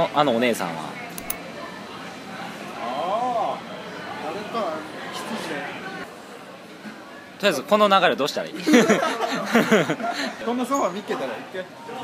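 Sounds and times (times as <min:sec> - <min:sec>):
soft clicks: 0:01.2 - 0:01.4.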